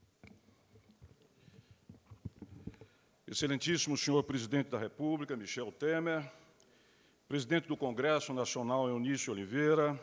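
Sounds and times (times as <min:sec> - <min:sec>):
microphone handling bumps and rustles: 0:00.3 - 0:02.9.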